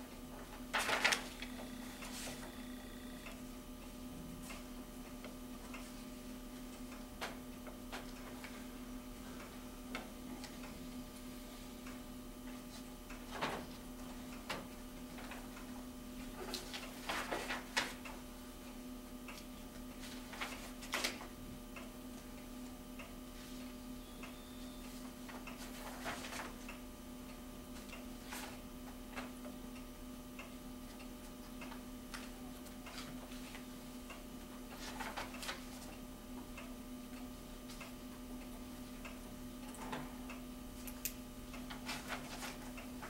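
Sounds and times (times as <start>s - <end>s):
steady low hum: 0.0s - 43.0s
paper pages rustling: 0.7s - 2.4s.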